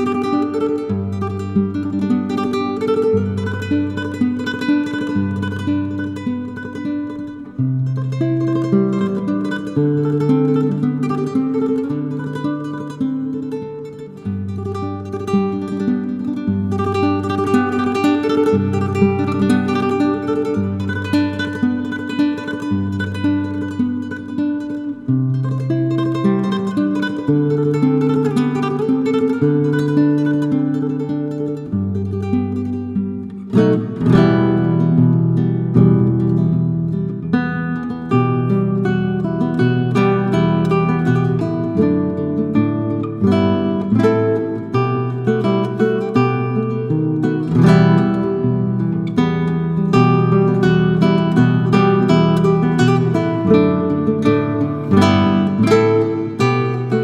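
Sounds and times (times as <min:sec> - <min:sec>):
nylon-string guitar melody: 0:00.0 - 0:57.0.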